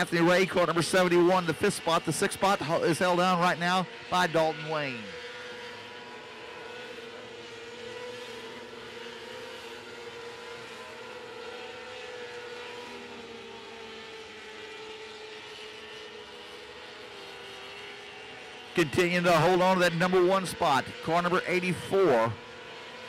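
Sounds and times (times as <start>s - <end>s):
racing car engines droning: 0.0s - 23.0s.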